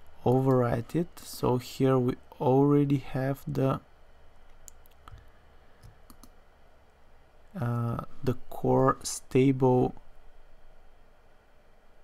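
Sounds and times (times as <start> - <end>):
low steady background hum: 0.0 - 12.0
computer mouse clicks: 5.8 - 6.4.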